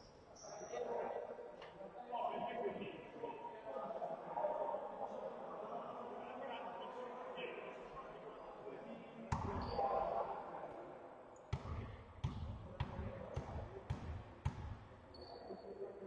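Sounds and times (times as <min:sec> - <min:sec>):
basketball bouncing on hall floor: 0:11.5 - 0:15.0.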